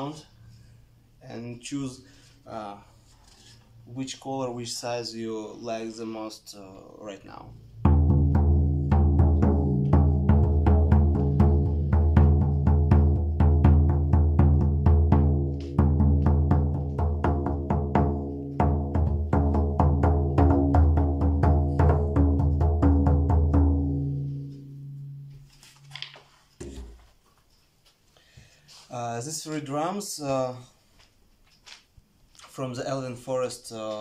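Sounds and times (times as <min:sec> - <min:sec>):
frame drum beats: 0:07.7 - 0:25.5, 0:26.6 - 0:27.2.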